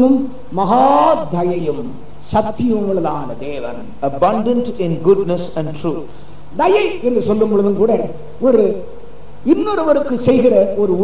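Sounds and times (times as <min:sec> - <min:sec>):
man preaching: 0:00.0 - 0:11.0.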